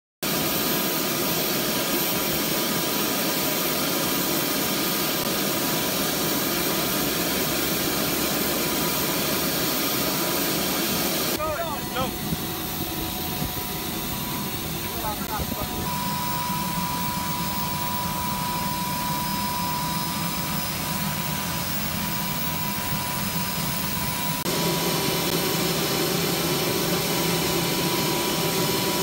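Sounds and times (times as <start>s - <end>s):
helicopter engines and rotor: 0.2s - 29.0s
distant engine noise: 5.3s - 29.0s
voices: 11.4s - 12.4s, 14.2s - 16.1s.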